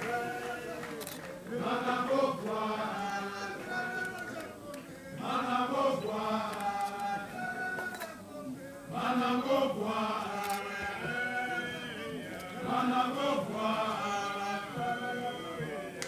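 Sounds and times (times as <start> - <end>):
group of voices chanting: 0.0 - 16.0.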